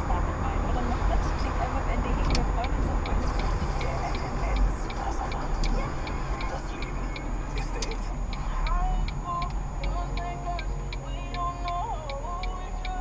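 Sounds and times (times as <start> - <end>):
car driving rumble: 0.0 - 13.0
turn signal ticking: 0.0 - 13.0.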